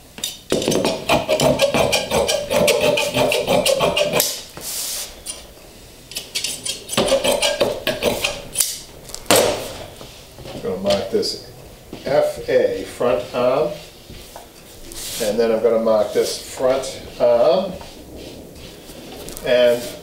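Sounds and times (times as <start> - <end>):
cloth swishing: 11.9 - 20.0.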